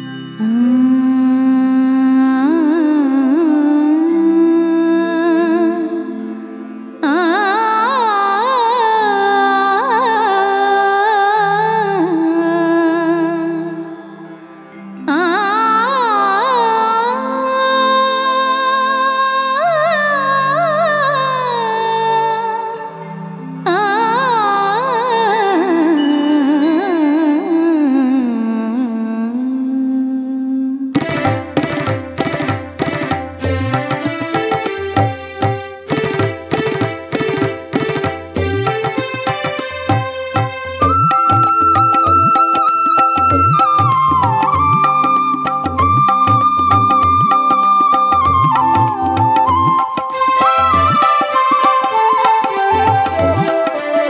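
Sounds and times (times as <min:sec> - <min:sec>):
hand drums: 0:31.0 - 0:53.8.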